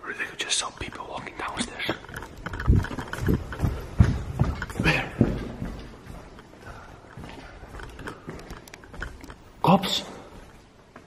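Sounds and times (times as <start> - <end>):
person whispering: 0.0 - 2.1.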